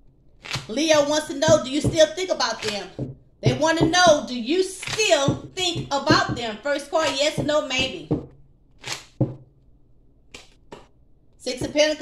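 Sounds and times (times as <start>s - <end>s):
cards being shuffled: 0.4s - 1.2s, 1.8s - 3.9s, 8.8s - 9.4s, 10.3s - 10.9s.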